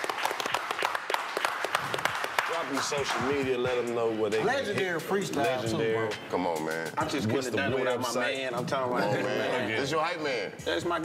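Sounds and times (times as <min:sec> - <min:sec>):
people clapping: 0:00.0 - 0:05.0.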